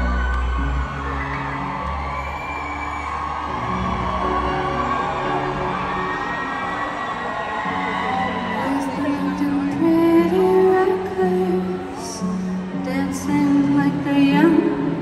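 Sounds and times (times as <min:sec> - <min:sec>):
crowd noise and whooping: 0:00.0 - 0:15.0.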